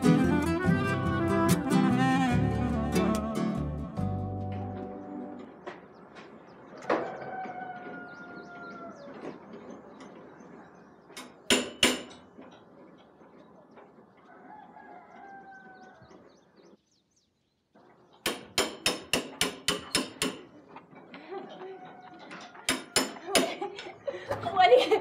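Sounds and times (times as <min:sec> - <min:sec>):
rooster crowing: 0:06.9 - 0:09.2, 0:14.2 - 0:16.2, 0:21.6 - 0:23.3
sharp knocks: 0:11.2 - 0:12.2.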